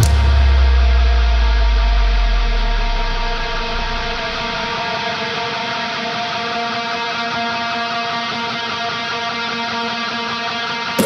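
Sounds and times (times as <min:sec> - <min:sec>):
low bass note: 0:00.0 - 0:04.7
distorted electric guitar chord ringing: 0:00.0 - 0:05.4.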